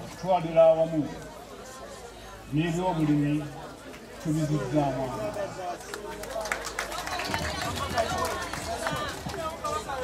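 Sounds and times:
outdoor crowd noise: 0.0 - 10.0
people talking: 0.0 - 10.0.

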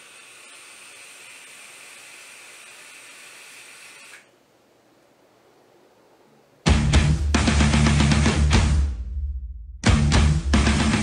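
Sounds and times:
hiss of vape draw: 0.0 - 4.3.

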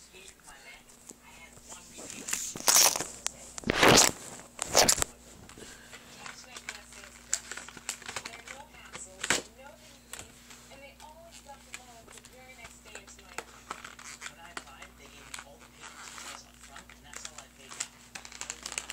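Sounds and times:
plastic packaging crinkling: 2.1 - 9.5, 13.0 - 18.9.

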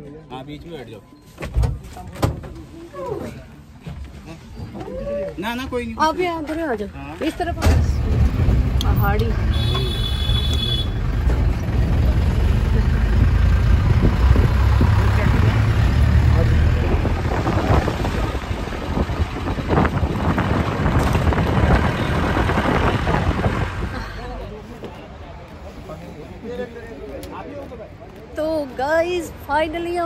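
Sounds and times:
van engine and road noise: 0.0 - 30.0.

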